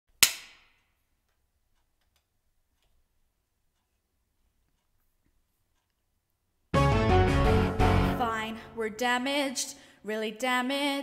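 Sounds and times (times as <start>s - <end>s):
sharp hand clap: 0.2s - 0.8s.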